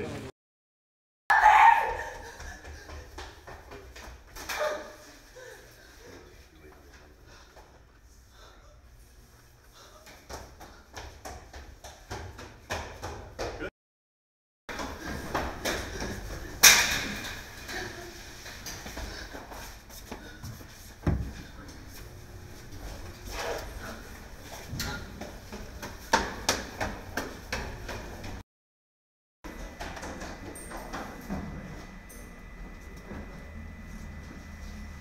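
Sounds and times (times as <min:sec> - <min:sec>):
footsteps on stairs: 0:01.9 - 0:05.0, 0:09.8 - 0:13.6.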